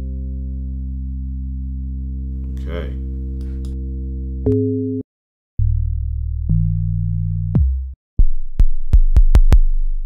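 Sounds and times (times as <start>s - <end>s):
low held synthesizer notes: 0.0s - 5.0s.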